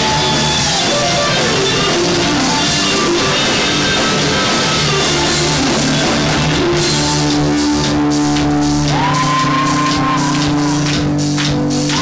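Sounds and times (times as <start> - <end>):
live rock band playing: 0.0 - 12.0
high shout: 8.8 - 10.9.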